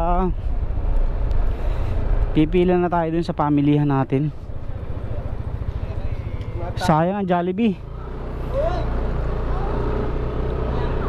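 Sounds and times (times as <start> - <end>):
motor scooter engine running: 7.8 - 11.0.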